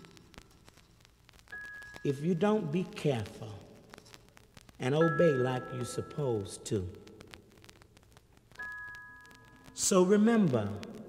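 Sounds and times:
vinyl record crackle: 0.0s - 11.0s.

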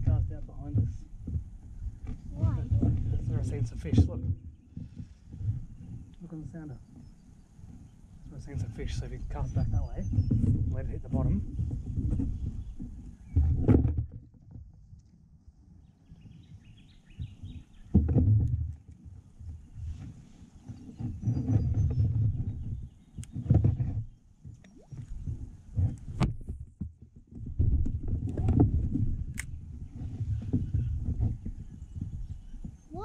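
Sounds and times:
fishing tackle knocking and rumbling: 0.0s - 15.0s, 17.2s - 32.9s.

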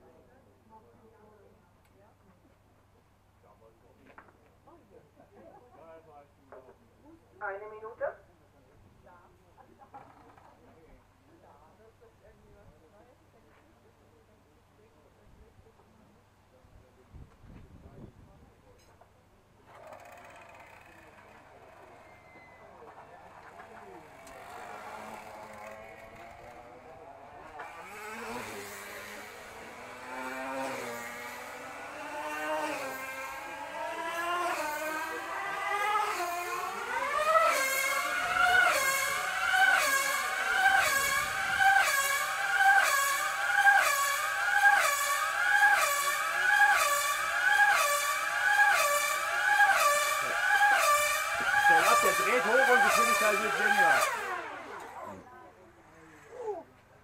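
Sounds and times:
model car engine whining: 19.6s - 57.0s.

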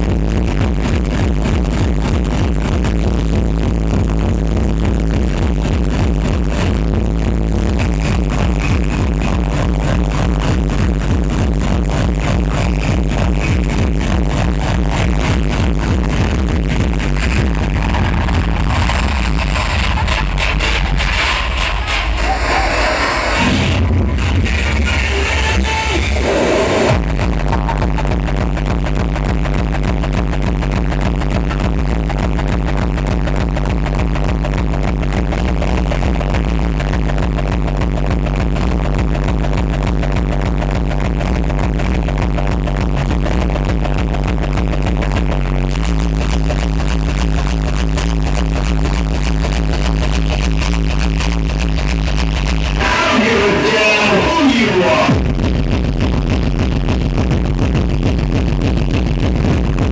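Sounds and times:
distorted kick drum: 0.0s - 59.9s
hardcore techno over sound system: 0.0s - 59.9s.

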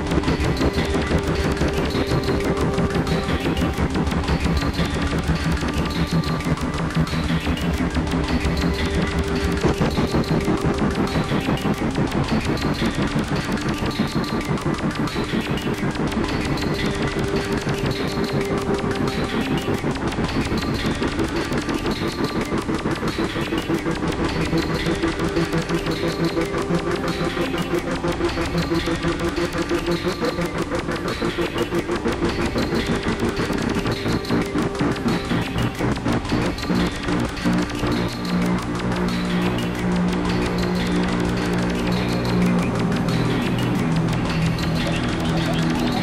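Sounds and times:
fast electronic pulse: 0.0s - 46.0s.

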